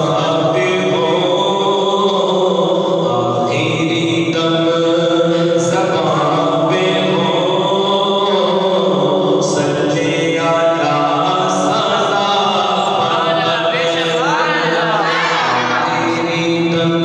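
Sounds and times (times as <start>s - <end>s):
man singing unaccompanied: 0.0s - 17.0s.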